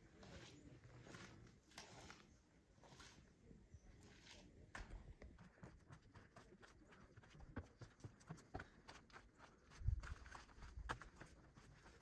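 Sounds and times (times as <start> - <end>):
footsteps on stone: 4.0 - 12.0.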